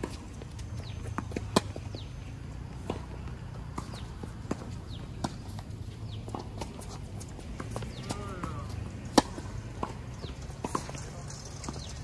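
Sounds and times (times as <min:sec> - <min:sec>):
footsteps on court: 0:00.0 - 0:12.0
tennis ball bouncing: 0:00.0 - 0:12.0
tennis ball hitting racket: 0:02.7 - 0:12.0.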